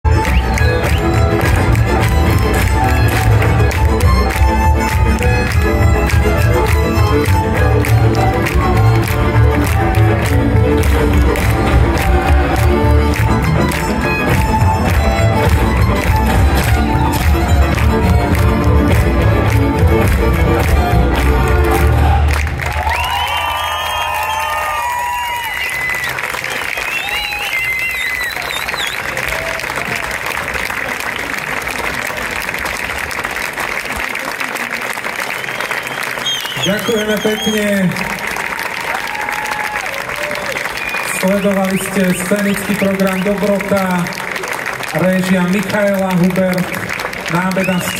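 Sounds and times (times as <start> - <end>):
folk band playing dance music: 0.0 - 23.0, 32.2 - 38.3, 39.3 - 47.9
audience applauding and cheering: 0.0 - 47.9
audience shouts: 11.4 - 13.3, 21.6 - 26.2, 36.4 - 41.4.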